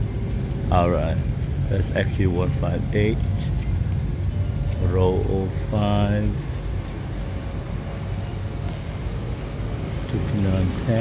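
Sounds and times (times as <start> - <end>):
low rumble of terminal hall: 0.0 - 11.0.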